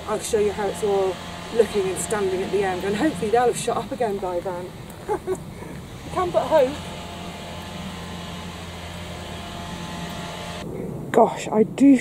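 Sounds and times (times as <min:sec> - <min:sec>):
power tool motor humming: 0:00.0 - 0:10.6.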